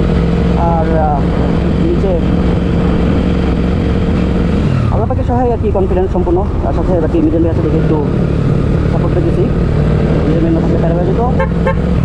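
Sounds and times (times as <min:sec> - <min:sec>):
motorcycle engine running: 0:00.0 - 0:12.0
wind rumble on microphone: 0:00.0 - 0:12.0.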